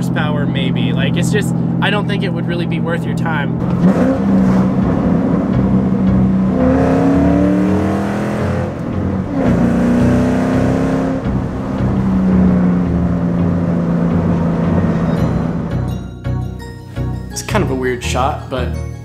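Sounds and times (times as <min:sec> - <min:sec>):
car engine from inside cabin: 0:00.0 - 0:15.8.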